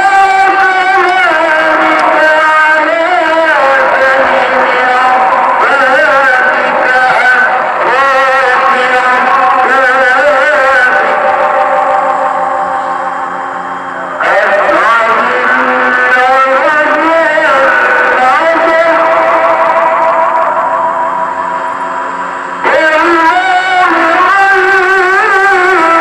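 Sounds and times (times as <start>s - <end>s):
ornamented call to prayer melody: 0.0s - 26.0s.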